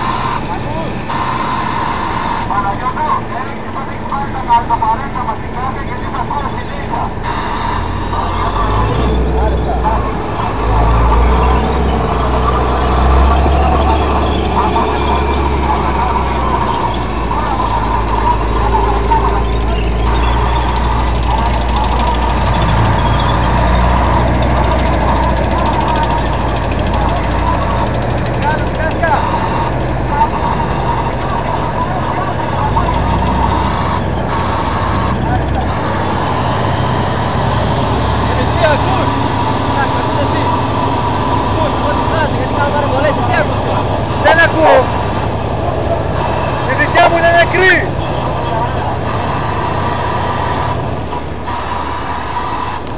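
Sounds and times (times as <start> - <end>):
tank engine rumbling: 0.0 - 52.9.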